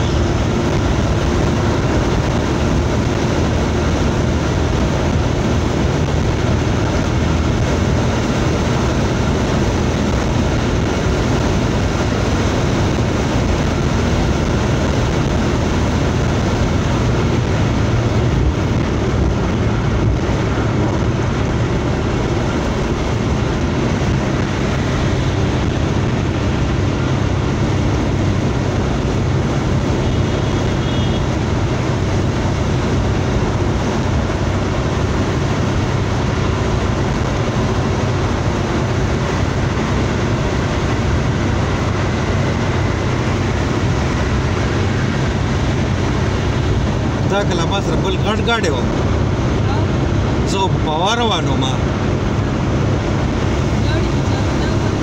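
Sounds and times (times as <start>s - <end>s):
car engine hum: 0.0s - 55.0s.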